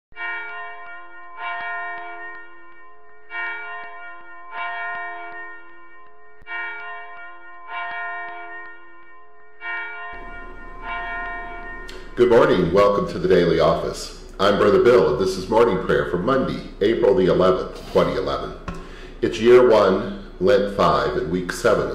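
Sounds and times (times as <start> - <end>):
church bell ringing: 0.1 - 21.9
faint steady hiss: 10.2 - 21.9.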